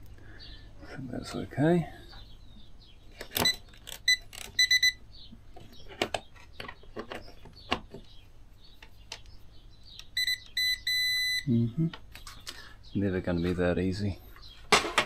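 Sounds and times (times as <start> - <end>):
meter beeping: 3.4 - 5.0, 10.0 - 11.6
clicks and knocks from handling: 5.5 - 8.2.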